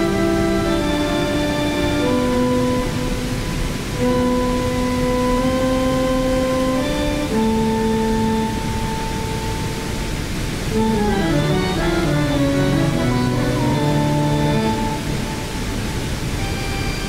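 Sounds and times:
synthesizer tones through speaker: 0.0 - 3.4, 10.7 - 16.6
waterfall rushing: 0.0 - 17.0.

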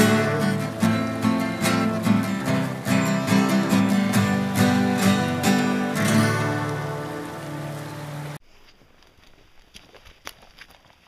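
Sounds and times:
acoustic guitars strummed chord: 0.0 - 8.4.

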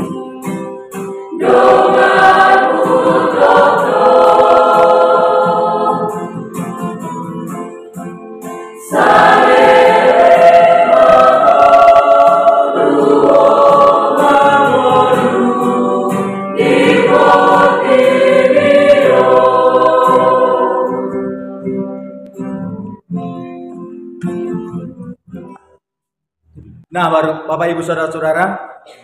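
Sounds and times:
choir singing: 0.0 - 6.7, 8.8 - 21.5
acoustic guitar: 0.0 - 27.0.

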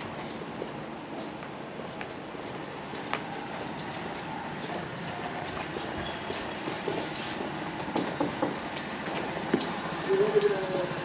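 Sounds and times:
train rumbling past: 0.0 - 11.0.

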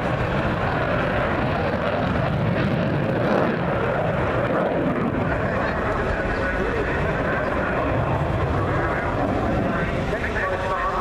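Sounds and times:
fighter jet flying past: 0.0 - 11.0.

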